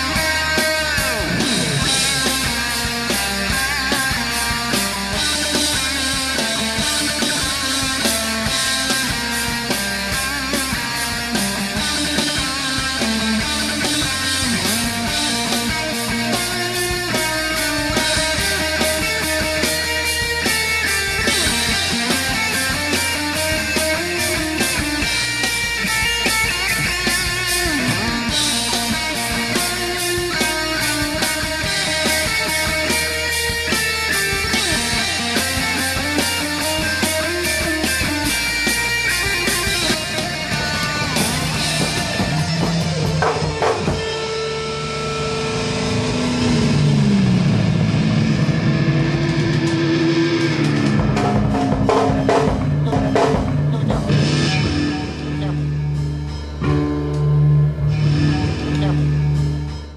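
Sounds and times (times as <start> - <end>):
bass and drums: 0.0 - 59.9
distorted electric guitar: 0.0 - 59.9.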